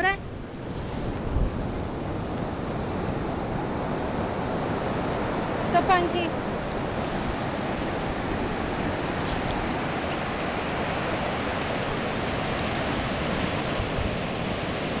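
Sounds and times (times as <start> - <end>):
ocean surf breaking: 0.0 - 15.0.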